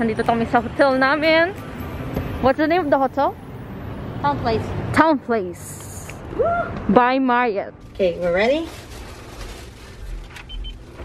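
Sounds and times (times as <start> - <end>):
door lock beeps: 10.4 - 10.8.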